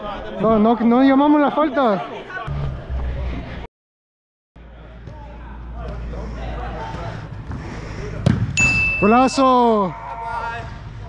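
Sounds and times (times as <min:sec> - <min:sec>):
players' voices: 0:04.6 - 0:11.0
ball kicked and bouncing on turf: 0:06.9 - 0:08.6.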